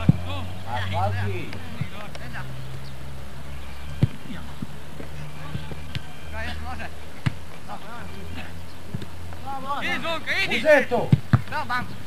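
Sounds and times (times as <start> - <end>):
steady low hum: 0.0 - 12.0
football kicked with a thud: 11.0 - 11.6.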